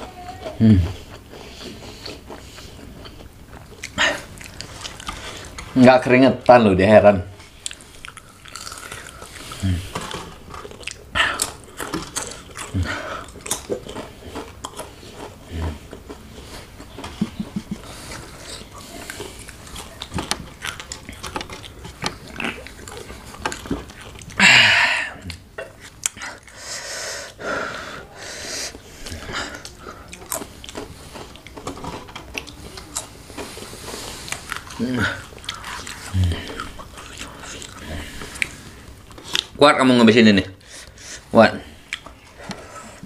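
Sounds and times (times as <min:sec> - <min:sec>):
crunching and chewing chips: 0:00.0 - 0:06.6, 0:07.3 - 0:43.0.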